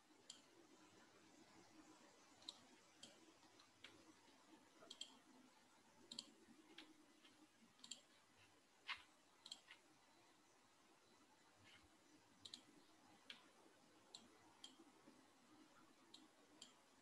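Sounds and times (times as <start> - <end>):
faint computer clicks: 0.2 - 0.5, 2.4 - 5.3, 6.0 - 9.9, 11.6 - 14.9, 16.0 - 16.9.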